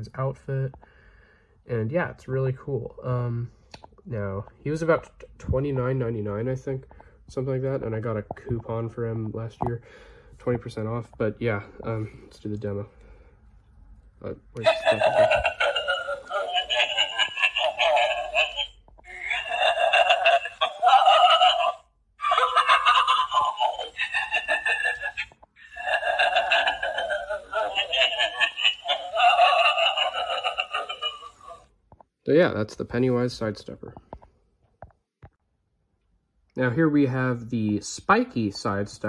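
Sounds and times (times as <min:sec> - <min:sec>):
recorded voice from small speaker: 0:14.2 - 0:31.7.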